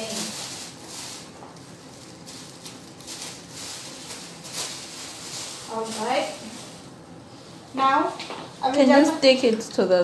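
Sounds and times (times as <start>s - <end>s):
rustling of dressing supplies: 0.0s - 9.8s
woman speaking: 5.7s - 6.6s, 7.7s - 10.0s.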